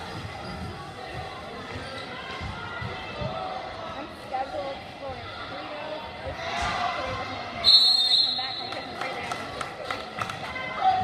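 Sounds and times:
crowd chatter: 0.0 - 11.0
referee whistle blast: 7.6 - 8.7.

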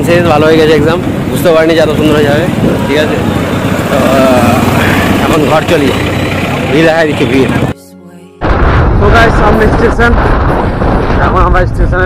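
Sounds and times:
motorcycle running: 0.0 - 7.8
road and wind noise: 0.0 - 7.8, 8.4 - 12.0.

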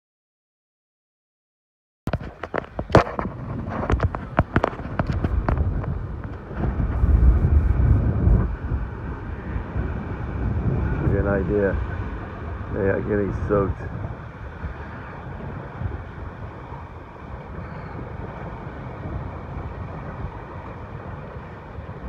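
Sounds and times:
churning water: 2.1 - 22.0
wind buffeting microphone: 2.1 - 22.0.

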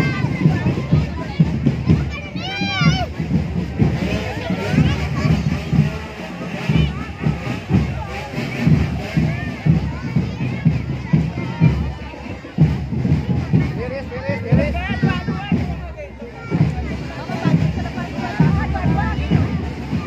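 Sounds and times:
crowd chattering: 0.0 - 20.0
marching drum band: 0.0 - 20.0.

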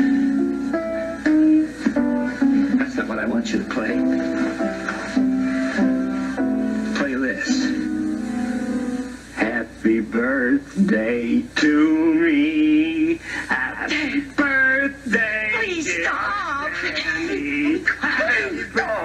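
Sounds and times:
piano chords: 0.0 - 11.5
man singing: 9.4 - 19.0.

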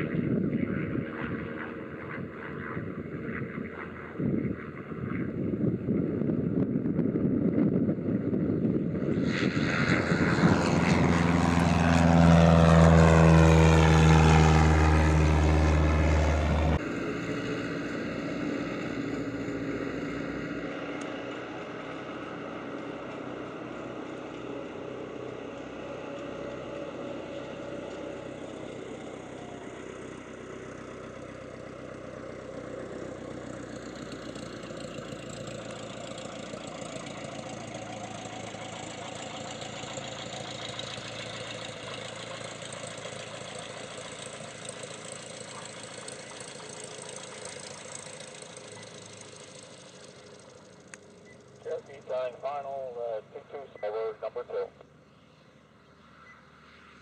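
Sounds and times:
airplane engine at full power: 0.0 - 57.0
distant airplane engine: 0.0 - 57.0.

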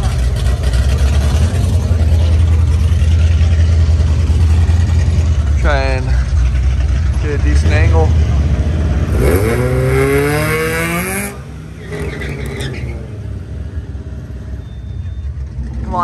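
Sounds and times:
low engine rumble: 0.0 - 10.2, 10.8 - 16.0.

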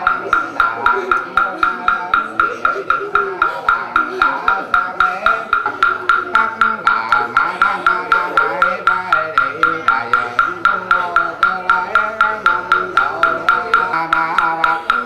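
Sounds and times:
slow chanting: 0.0 - 15.0
wooden fish knocked with mallet: 0.0 - 15.0.

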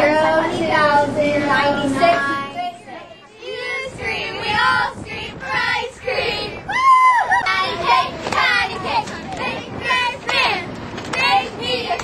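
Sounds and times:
young voices singing together: 0.0 - 12.0.

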